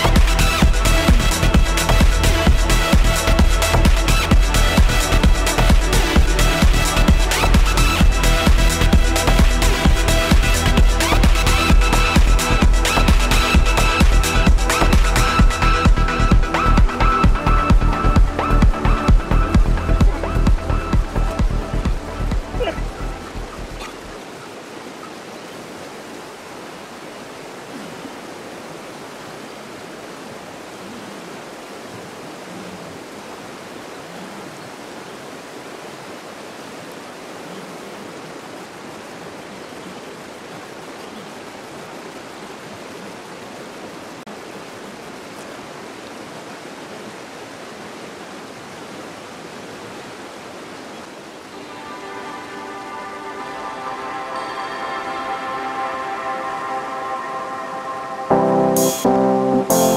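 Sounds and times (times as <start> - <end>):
background music: 0.0 - 24.1, 51.5 - 59.9
river rushing over gravel: 0.0 - 59.9.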